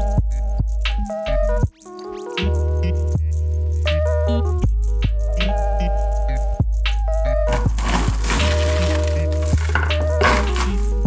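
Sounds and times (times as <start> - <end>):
background music with bass: 0.0 - 11.0
magnetic rods and balls clattering: 7.5 - 11.0.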